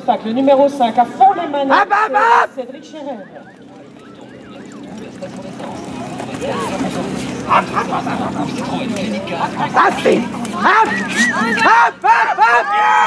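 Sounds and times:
outdoor background noise: 0.0 - 13.0
voices calling out: 1.6 - 13.0.

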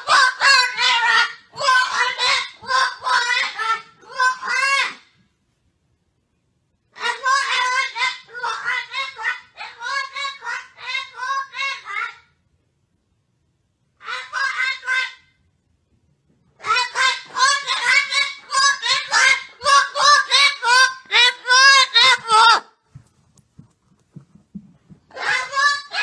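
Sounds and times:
parrot squawking: 0.0 - 5.1, 6.9 - 12.4, 14.0 - 15.4, 16.6 - 22.8, 25.1 - 26.0.

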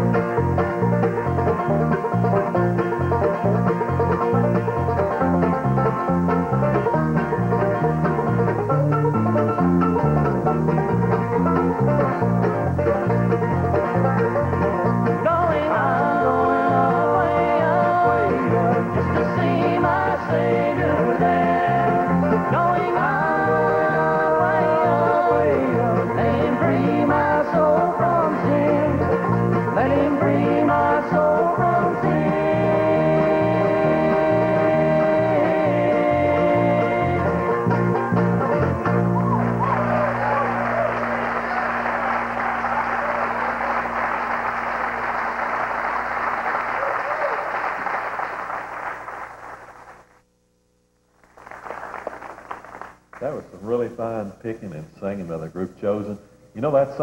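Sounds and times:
banjo: 0.0 - 45.9
mandolin: 0.0 - 46.0
acoustic guitar: 0.0 - 46.6
bass guitar line: 0.0 - 46.8
bluegrass band playing: 0.0 - 46.8
group singing in harmony: 15.1 - 37.8.

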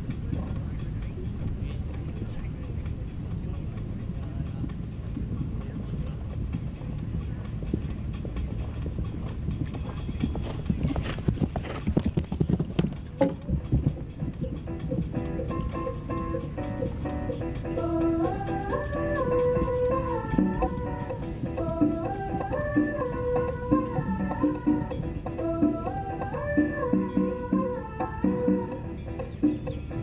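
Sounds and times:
steady low rumble: 0.0 - 27.9
horse hooves cantering on grass: 4.2 - 15.7.

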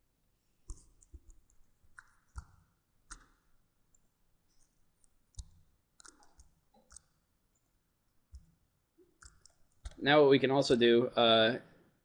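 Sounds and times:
computer mouse clicks: 0.6 - 7.7, 9.2 - 10.0.

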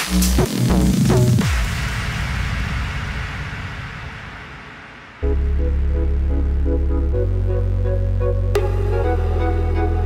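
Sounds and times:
white-noise sweep: 0.0 - 7.8
electronic house music: 5.2 - 10.0.

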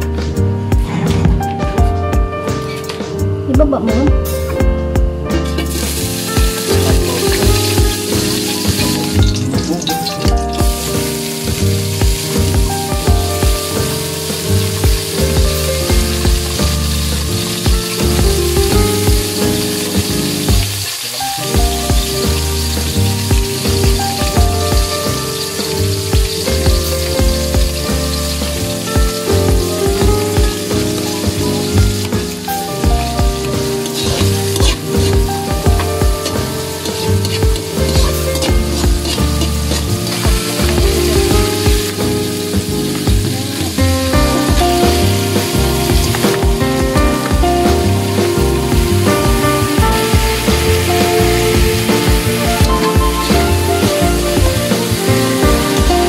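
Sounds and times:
background music with a beat: 0.0 - 56.0
food sizzling in hot oil: 4.2 - 56.0.

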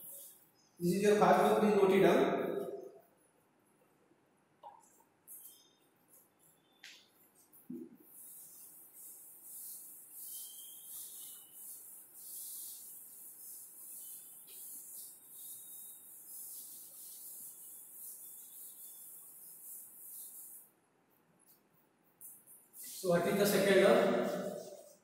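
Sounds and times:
eraser rubbing on chalkboard: 7.4 - 20.7, 22.2 - 25.0.

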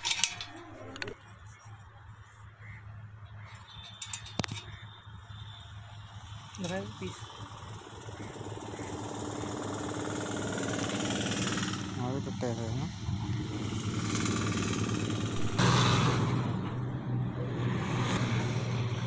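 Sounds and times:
vehicle engine running: 6.1 - 19.0.

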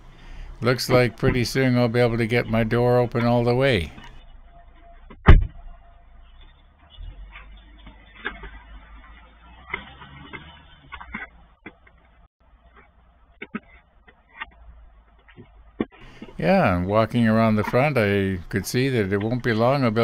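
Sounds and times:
car door shutting: 5.1 - 5.7.

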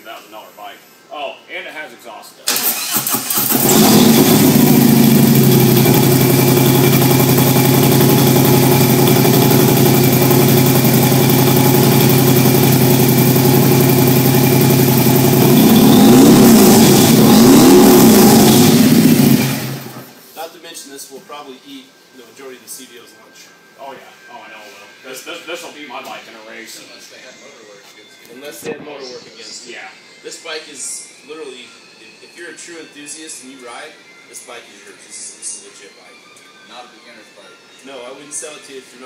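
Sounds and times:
motorcycle engine idling and revving: 3.5 - 20.1.

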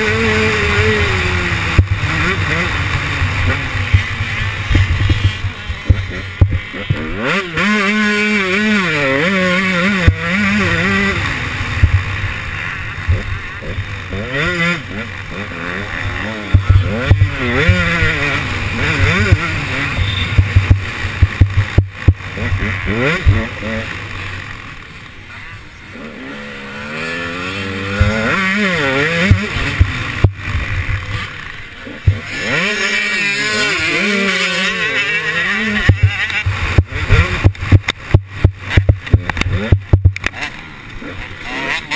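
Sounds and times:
two-stroke motorbike engine revving: 0.0 - 41.9
sharp knocks and buffeting: 20.3 - 23.5, 32.0 - 32.4, 35.8 - 40.4.

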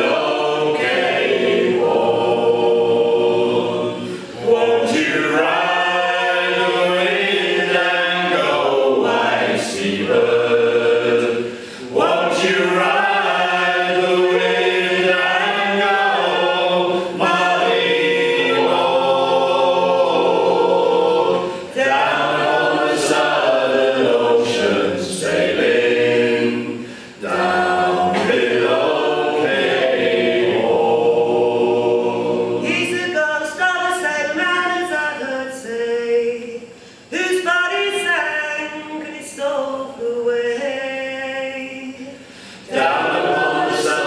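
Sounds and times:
group singing a cappella: 0.0 - 44.0.

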